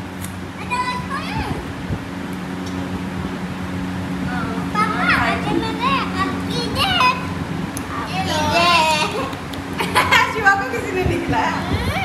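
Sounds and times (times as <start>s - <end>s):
steady low hum: 0.0s - 12.0s
young child calling out: 0.6s - 1.6s.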